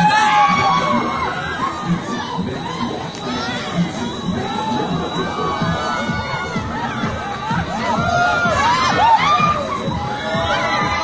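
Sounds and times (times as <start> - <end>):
riders shrieking and shouting: 0.0 - 11.0.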